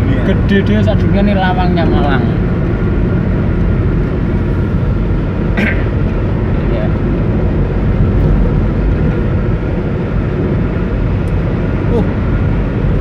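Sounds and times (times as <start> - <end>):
car engine hum: 0.0 - 13.0
tyre roar on highway: 0.0 - 13.0.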